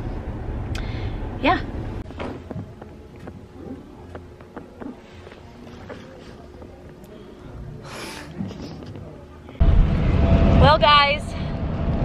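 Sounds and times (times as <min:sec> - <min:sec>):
distant voices: 0:02.0 - 0:12.0.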